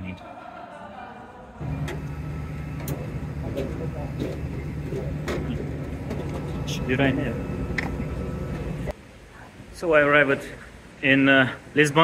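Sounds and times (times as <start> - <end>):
airliner low hum: 1.6 - 8.9.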